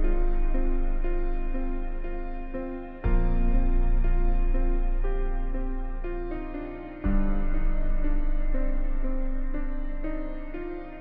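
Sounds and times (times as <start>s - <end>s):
slow gentle piano music: 0.0s - 11.0s.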